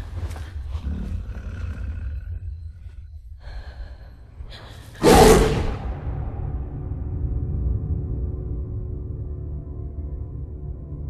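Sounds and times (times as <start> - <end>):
heavy low rumble: 0.0 - 10.9
monster growling roar: 5.0 - 5.9.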